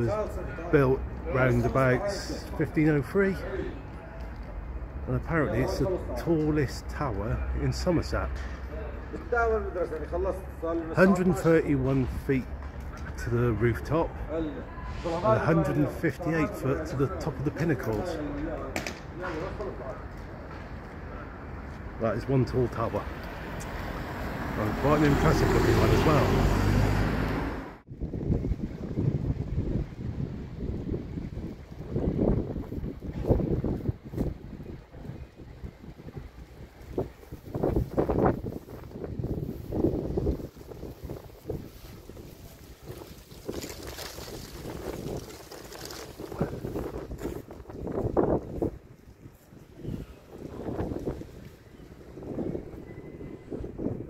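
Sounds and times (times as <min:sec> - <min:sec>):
wind buffeting microphone: 0:27.8 - 0:54.0.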